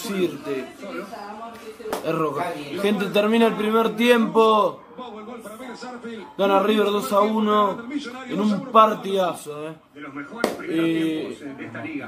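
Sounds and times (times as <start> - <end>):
man talking: 2.1 - 12.0.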